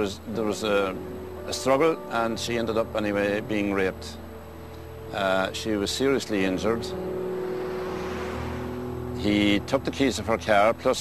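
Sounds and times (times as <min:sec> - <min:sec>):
low background music drone: 0:00.0 - 0:11.0
car passing: 0:06.3 - 0:10.8.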